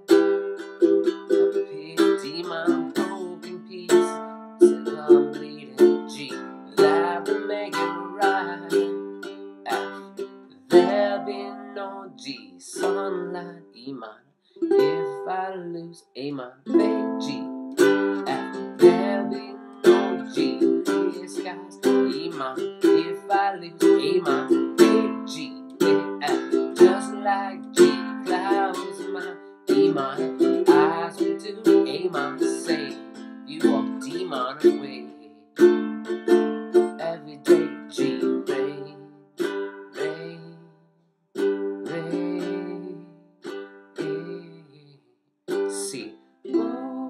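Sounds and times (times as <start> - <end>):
ukulele strumming chords: 0.0 - 13.8, 14.6 - 15.7, 16.6 - 40.7, 41.4 - 44.8, 45.5 - 47.0.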